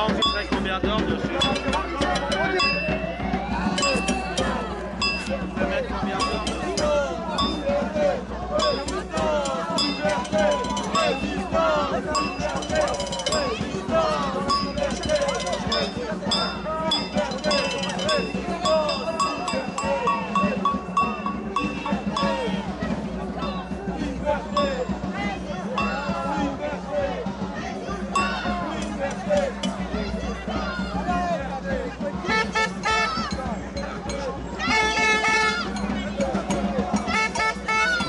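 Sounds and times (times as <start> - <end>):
cowbell clanking: 0.0 - 26.6, 28.1 - 30.8, 32.3 - 38.0
voices of marching crowd: 0.0 - 38.0.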